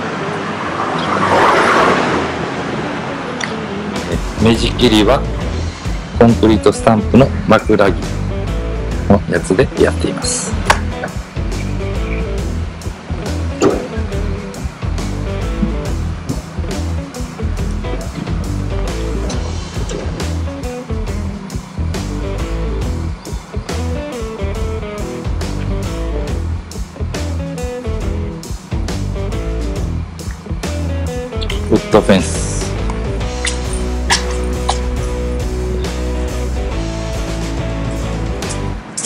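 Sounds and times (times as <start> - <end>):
music with steady beat: 3.4 - 9.2, 10.2 - 39.0.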